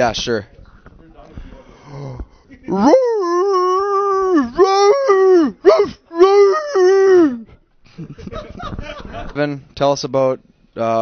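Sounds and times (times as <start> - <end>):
man howling into a microphone: 2.7 - 7.5.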